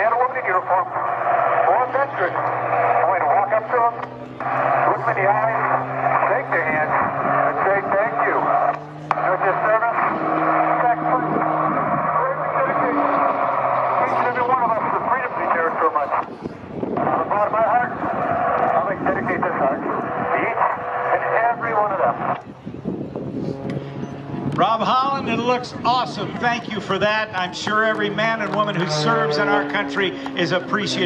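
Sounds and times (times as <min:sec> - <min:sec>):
man speaking over loudspeakers: 0:00.0 - 0:22.4, 0:24.3 - 0:31.0
low held tones: 0:00.3 - 0:17.3, 0:22.2 - 0:24.6.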